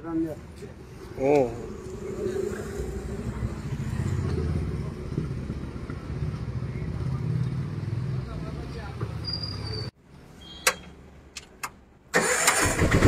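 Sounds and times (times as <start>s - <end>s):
people's voices: 0.1s - 6.0s.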